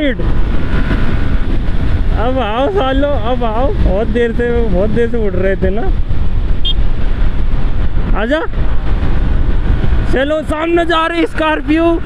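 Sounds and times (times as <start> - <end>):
motorcycle running: 0.0 - 12.0
wind buffeting microphone: 0.0 - 12.0.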